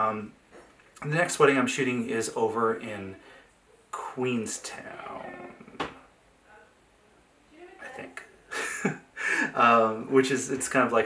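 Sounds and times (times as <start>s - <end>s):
man talking: 0.0s - 0.4s, 1.0s - 3.2s, 3.9s - 5.8s, 7.8s - 11.0s.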